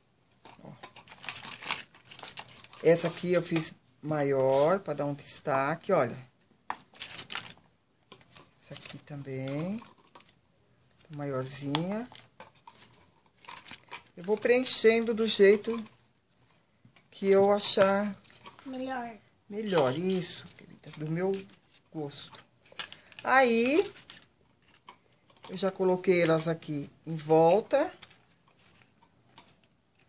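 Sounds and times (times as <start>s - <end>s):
rustling and crinkling leaves: 0.9s - 3.6s.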